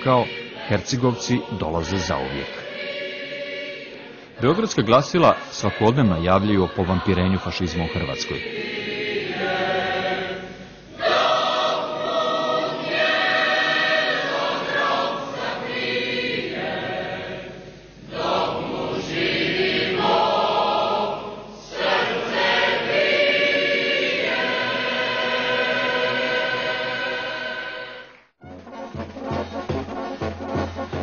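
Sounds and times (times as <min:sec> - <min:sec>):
choir singing held chords: 0:00.0 - 0:31.0.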